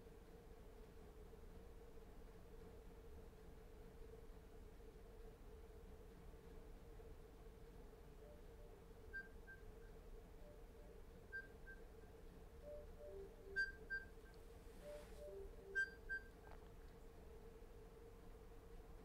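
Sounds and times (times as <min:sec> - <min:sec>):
steady low hum: 0:00.0 - 0:19.0
electronic timer alarm beeps: 0:08.2 - 0:11.9, 0:12.6 - 0:14.2, 0:14.8 - 0:16.4.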